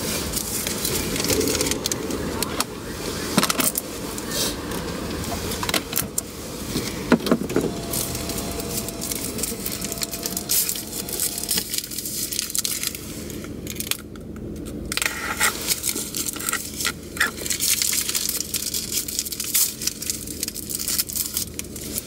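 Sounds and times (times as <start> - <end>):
car rumble: 0.0 - 22.0
paper wrapper crinkling: 7.7 - 14.1, 15.1 - 22.0.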